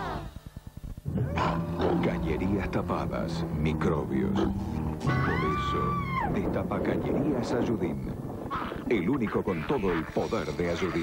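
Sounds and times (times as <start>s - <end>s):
music: 0.0s - 6.6s
low throbs: 0.0s - 8.5s.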